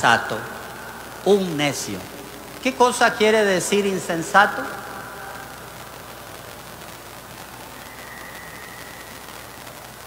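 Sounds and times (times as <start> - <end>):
faint low hum: 0.0 - 10.0
steady low hiss: 0.0 - 10.0
faint thin high tone: 7.6 - 10.0.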